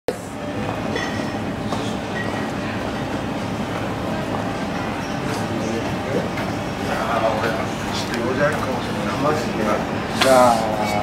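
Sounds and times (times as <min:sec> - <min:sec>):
low urban rumble: 0:00.1 - 0:11.0.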